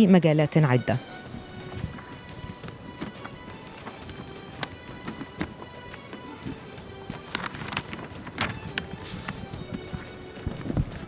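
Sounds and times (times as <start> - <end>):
faint music with held tone: 0.0 - 11.0.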